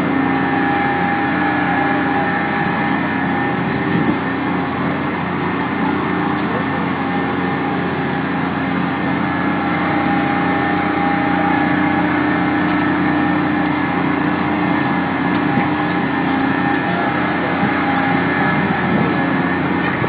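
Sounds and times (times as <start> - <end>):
carnival ride machinery drone: 0.0 - 20.0.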